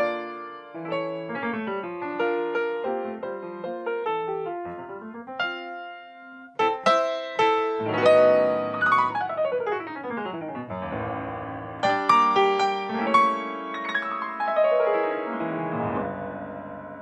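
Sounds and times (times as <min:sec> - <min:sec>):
grand piano playing: 0:00.0 - 0:17.0.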